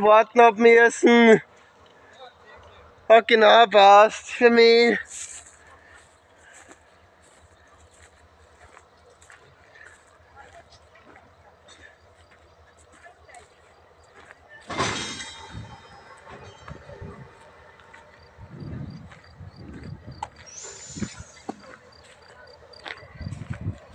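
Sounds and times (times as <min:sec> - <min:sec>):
diesel freight train: 0:00.0 - 0:23.9
low uneven rumbling: 0:05.4 - 0:23.9
sharp loud ringing bang: 0:14.7 - 0:16.7.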